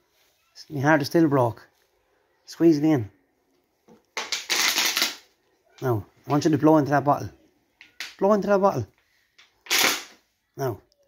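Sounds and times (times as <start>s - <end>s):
plastic bottle crackling: 3.9s - 5.3s.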